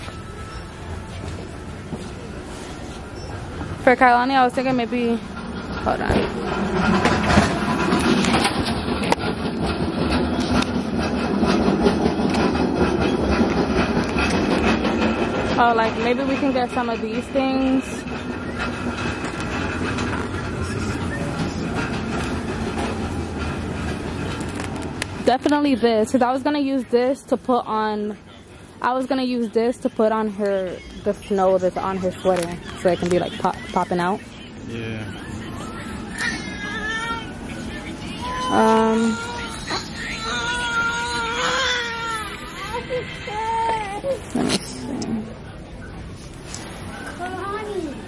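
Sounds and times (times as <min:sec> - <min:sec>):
young child whining: 0:38.3 - 0:44.4.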